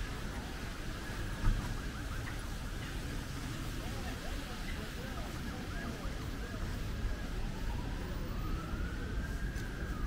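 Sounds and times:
street noise rumble: 0:00.0 - 0:10.0
siren wailing: 0:07.2 - 0:10.0.

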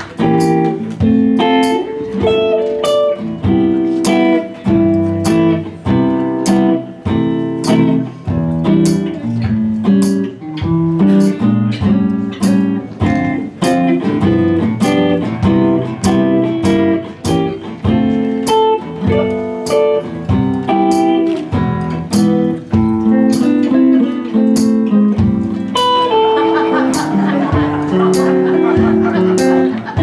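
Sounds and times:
acoustic guitar playing: 0:00.0 - 0:30.0.

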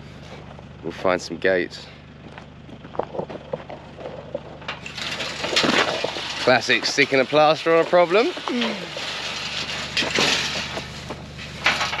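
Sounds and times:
gate rough scraping noise: 0:03.6 - 0:12.0.

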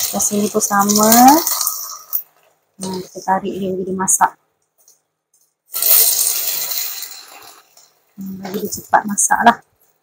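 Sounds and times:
egg sizzling in a frying pan: 0:00.0 - 0:04.2, 0:05.7 - 0:10.0.

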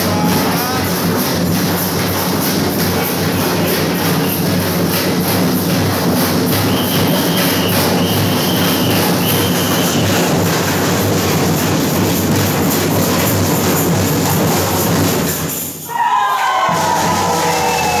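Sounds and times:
bass drums: 0:00.0 - 0:15.7, 0:16.6 - 0:18.0
drum band playing: 0:00.0 - 0:18.0
snare drums: 0:00.0 - 0:18.0.

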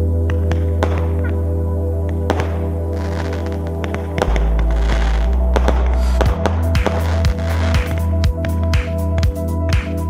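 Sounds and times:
background music with deep bass: 0:00.0 - 0:10.0
fireworks bangs: 0:02.3 - 0:08.0.

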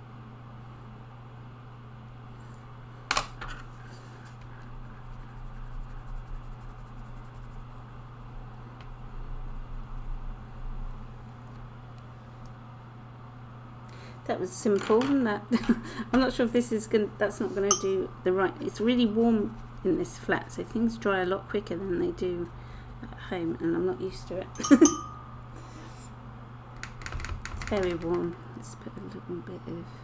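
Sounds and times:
low room hum: 0:00.0 - 0:30.0
brush on paper: 0:03.9 - 0:11.0.

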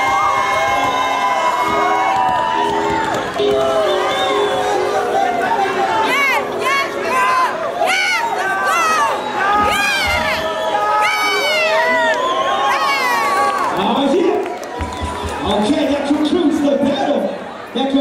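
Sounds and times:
crowd cheering and whooping: 0:00.0 - 0:17.7.

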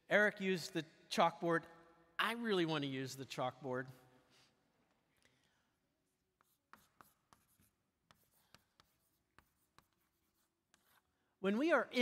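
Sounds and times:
chalk tapping and scratching: 0:06.0 - 0:11.2.

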